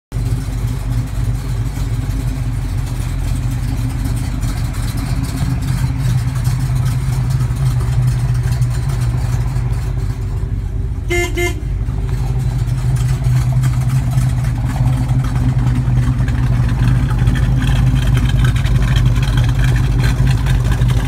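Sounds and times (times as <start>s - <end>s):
car engines idling deep rumble: 0.1s - 21.0s.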